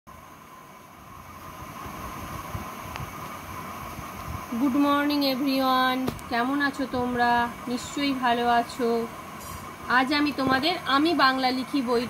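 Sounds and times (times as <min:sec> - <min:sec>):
mechanical hum: 0:00.1 - 0:12.0.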